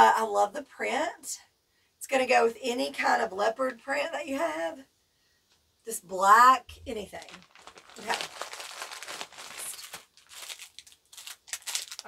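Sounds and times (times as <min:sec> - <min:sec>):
plastic packaging crinkling: 0:06.9 - 0:12.0.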